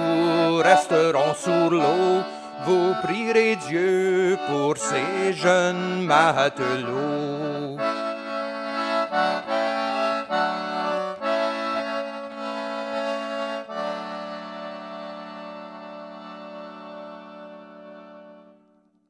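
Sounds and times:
concertina playing chords: 0:00.0 - 0:18.9.

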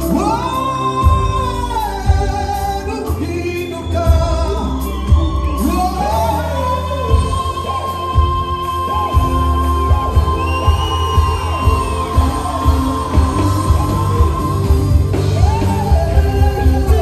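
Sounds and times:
band with heavy bass: 0:00.0 - 0:17.0
man singing into a microphone: 0:00.0 - 0:17.0
choir singing: 0:07.2 - 0:17.0.

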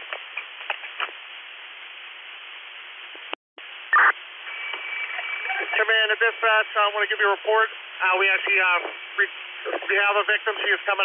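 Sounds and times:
radio hiss: 0:02.7 - 0:11.0
radio burst: 0:03.9 - 0:11.0
radio voice: 0:05.0 - 0:11.0.

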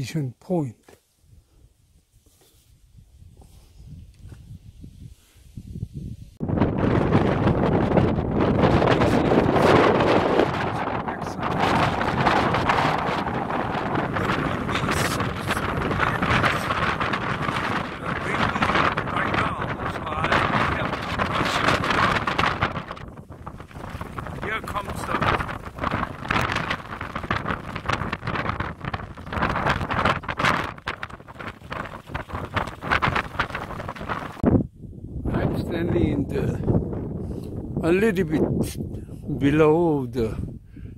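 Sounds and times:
wind buffeting microphone: 0:01.2 - 0:40.9.

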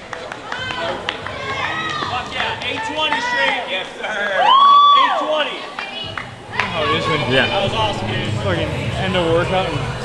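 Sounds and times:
people shouting and cheering: 0:00.0 - 0:10.0.

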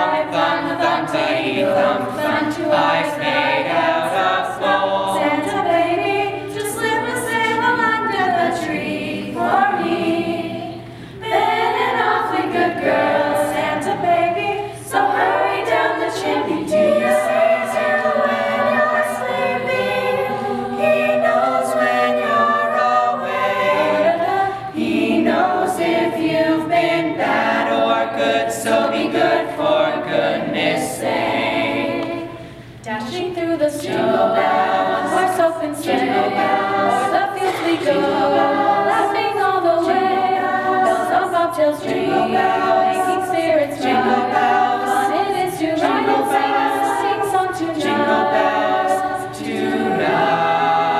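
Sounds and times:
choir singing in parts: 0:00.0 - 0:50.9.

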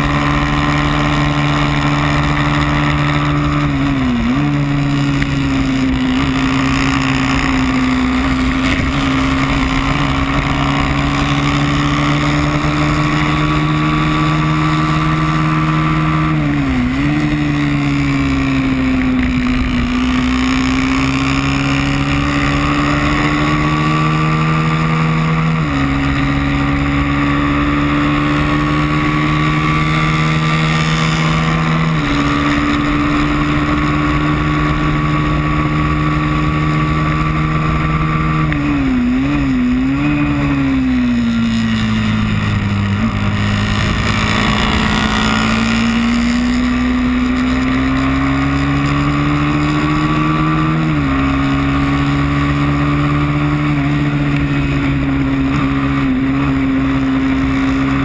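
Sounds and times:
racing motorcycle engine at high revs: 0:00.0 - 0:58.0.

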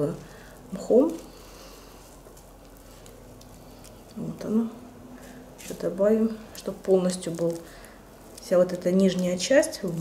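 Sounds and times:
rustling of damp moss: 0:00.0 - 0:10.0.

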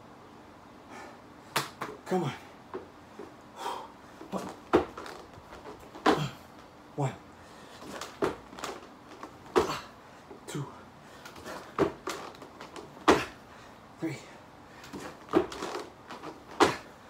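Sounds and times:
thuds on foam mats: 0:04.2 - 0:06.4, 0:07.8 - 0:09.9, 0:11.3 - 0:13.4, 0:14.9 - 0:16.9.

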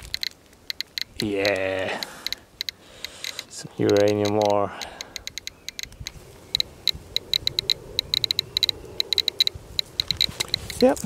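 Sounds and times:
geiger counter clicking: 0:00.0 - 0:11.0.

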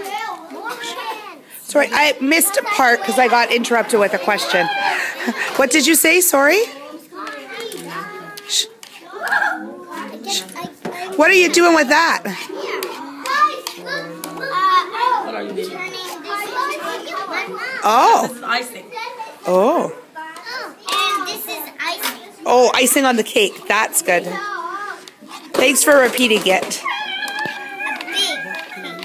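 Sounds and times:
young children chattering: 0:00.0 - 0:29.0.

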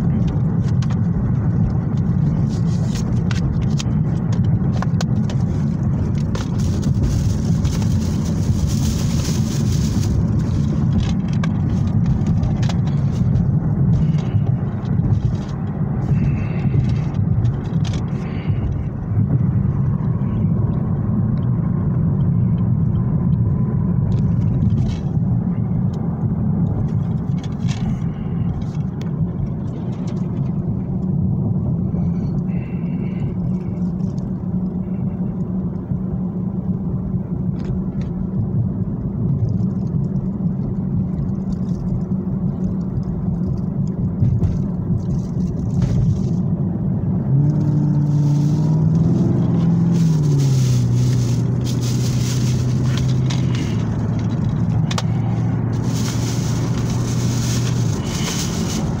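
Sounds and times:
car engine and road rumble: 0:00.0 - 0:59.0
plastic cases and bag rustling: 0:04.8 - 0:14.3, 0:47.8 - 0:59.0.

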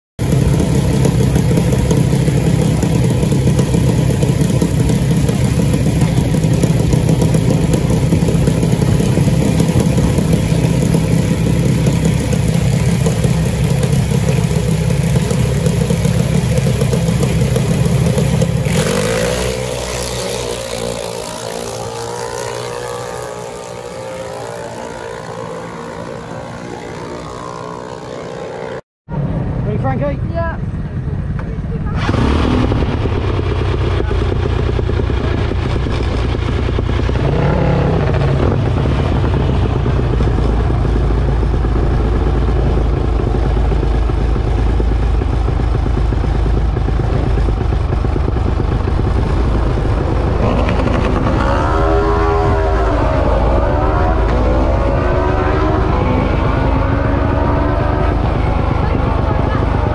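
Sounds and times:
dragster engine accelerating: 0:00.2 - 0:29.6, 0:30.7 - 0:59.9.

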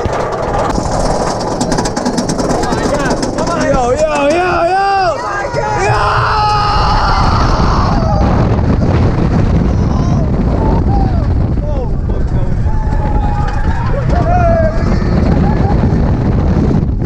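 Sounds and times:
roller coaster train rumbling: 0:00.0 - 0:17.0
wind buffeting microphone: 0:00.0 - 0:17.0
riders screaming: 0:03.9 - 0:08.4, 0:09.7 - 0:16.1.

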